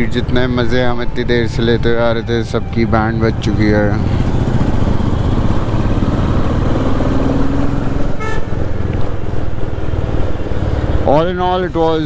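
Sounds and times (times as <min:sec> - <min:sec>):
motorcycle engine running: 0:00.0 - 0:12.0
horn toot: 0:08.0 - 0:08.6.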